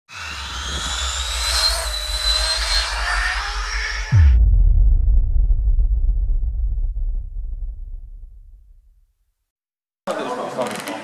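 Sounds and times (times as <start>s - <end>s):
hissing swell: 0.2s - 4.4s
low pulsing bass: 0.8s - 9.2s.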